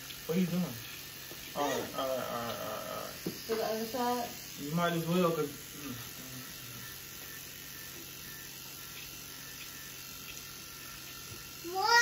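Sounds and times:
electric beard trimmer buzzing: 0.0 - 12.0.

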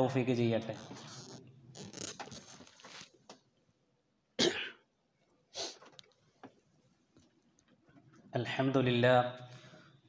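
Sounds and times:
person coughing: 4.4 - 4.9.

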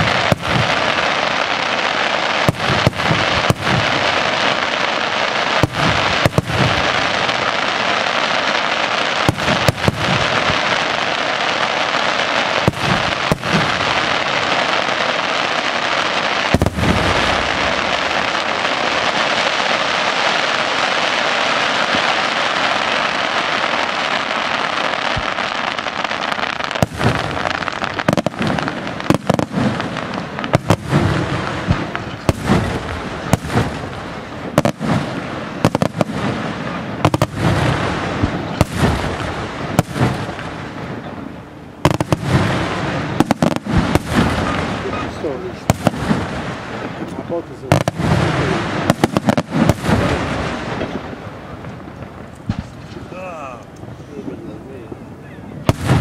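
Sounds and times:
firework bang: 0.0 - 1.3, 5.6 - 7.6, 9.2 - 11.1, 12.6 - 14.9, 16.5 - 25.9, 26.6 - 41.2, 41.8 - 53.2, 55.6 - 56.0
fireworks crackling: 0.0 - 56.0.

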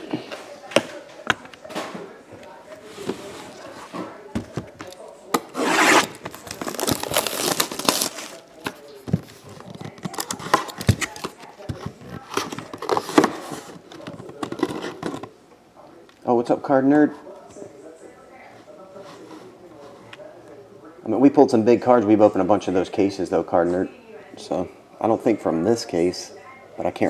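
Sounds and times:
wrapper crinkling and tearing: 6.2 - 8.5.

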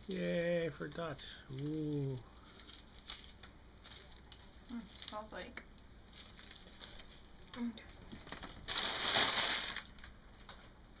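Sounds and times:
crinkling rustle: 0.0 - 10.7.

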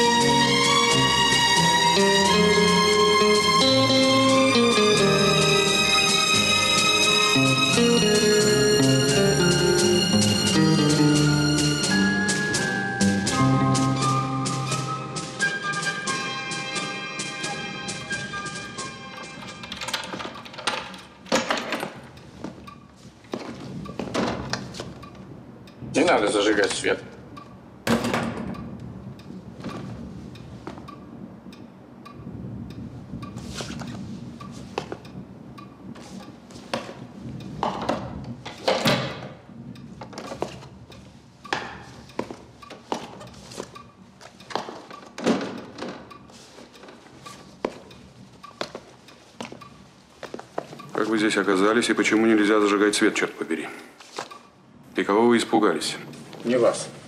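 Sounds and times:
people moving about: 9.5 - 25.4, 32.9 - 57.0
door knocks and thuds: 27.8 - 28.6.

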